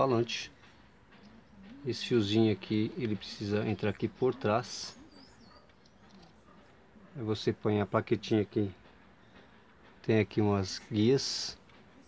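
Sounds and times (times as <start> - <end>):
small bird chirp: 3.9 - 6.7.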